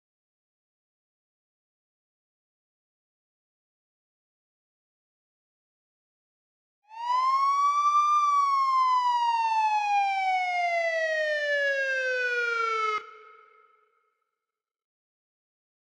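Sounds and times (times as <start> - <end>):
police siren wail: 6.9 - 13.6.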